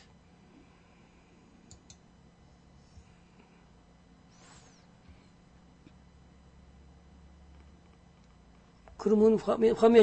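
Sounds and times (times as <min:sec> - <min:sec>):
computer mouse clicks: 0:01.6 - 0:02.0.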